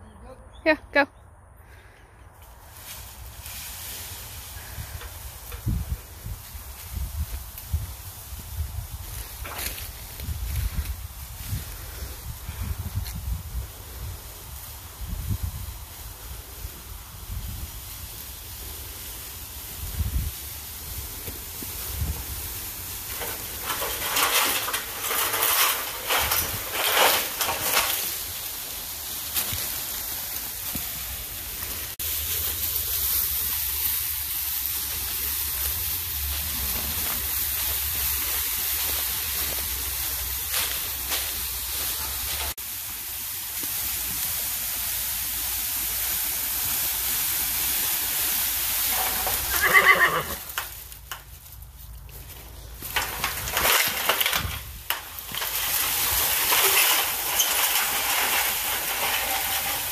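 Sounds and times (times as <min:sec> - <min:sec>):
tree dragged over dry leaves: 0:01.7 - 0:59.9
horse whinnying: 0:49.4 - 0:50.5.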